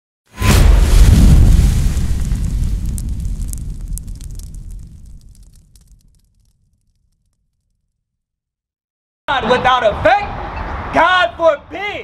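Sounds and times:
fiery boom with crackles: 0:00.3 - 0:07.8.

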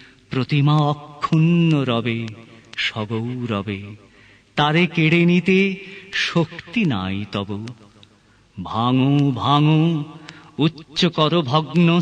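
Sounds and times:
man reciting poetry: 0:00.0 - 0:12.0.

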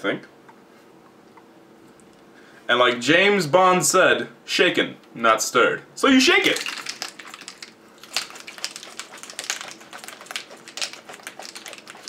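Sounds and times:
ice rattling in cocktail shaker: 0:06.4 - 0:12.0.

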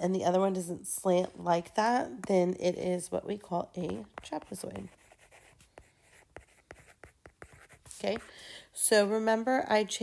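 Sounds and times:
stylus clicking and scratching on screen: 0:01.0 - 0:08.4.

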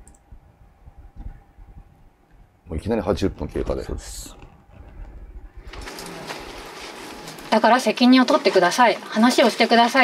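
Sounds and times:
low rumble: 0:04.2 - 0:05.8.

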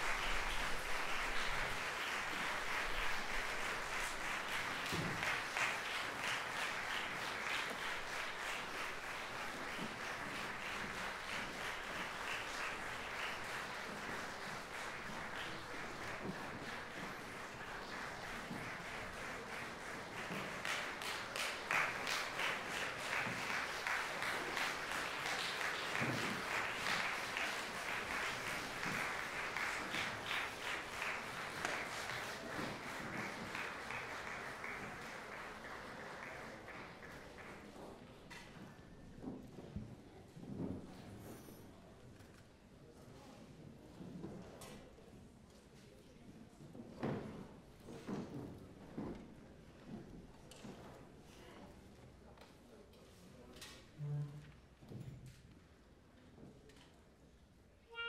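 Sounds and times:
audience applause: 0:00.0 - 0:37.8.

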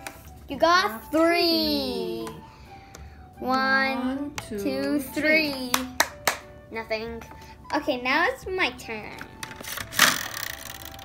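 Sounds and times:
plastic spinner wheel clicking: 0:09.6 - 0:11.0.

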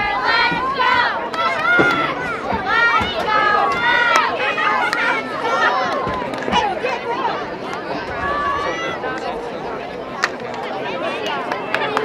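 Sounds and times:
crowd noise: 0:00.0 - 0:12.0
voices calling out and chattering: 0:00.0 - 0:12.0.

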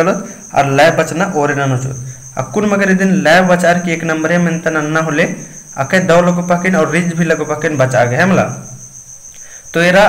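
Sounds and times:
man speaking: 0:00.0 - 0:08.7, 0:09.7 - 0:10.0.

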